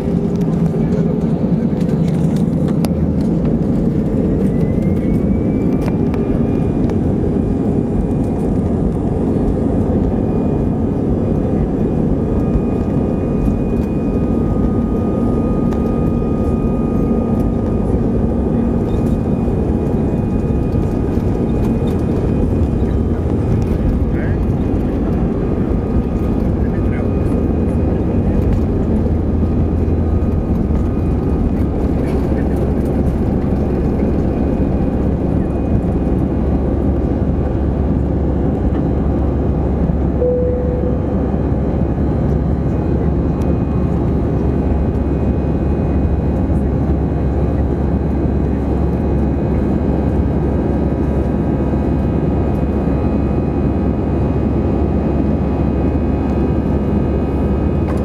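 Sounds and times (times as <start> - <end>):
faint engine whine: 0.0 - 58.0
jet engines rumbling: 0.0 - 58.0.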